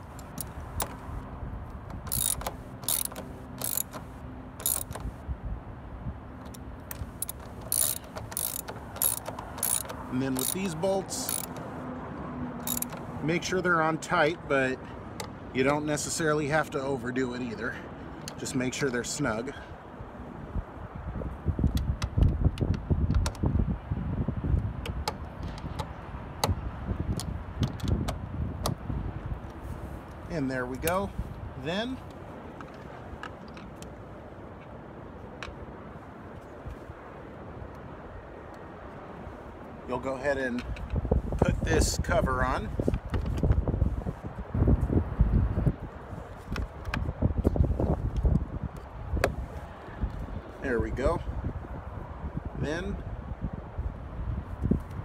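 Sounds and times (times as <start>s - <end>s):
socket ratchet clicking: 0.0s - 1.1s, 1.8s - 5.2s, 6.4s - 11.8s, 12.6s - 13.1s
wind rumble on microphone: 4.6s - 11.4s, 19.7s - 34.4s, 39.2s - 55.0s.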